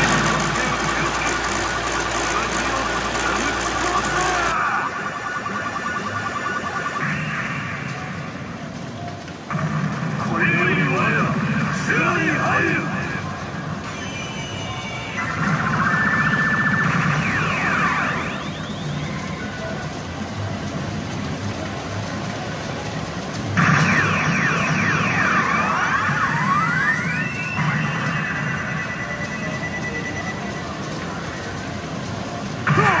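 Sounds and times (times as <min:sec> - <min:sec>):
electronic machine music: 0:00.0 - 0:08.7
siren-like electronic sweeps: 0:00.0 - 0:08.7, 0:09.5 - 0:19.8, 0:23.6 - 0:32.0.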